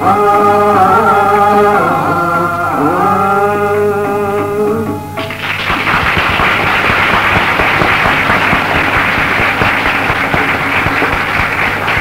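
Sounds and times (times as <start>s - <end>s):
audience applauding: 5.2s - 12.0s.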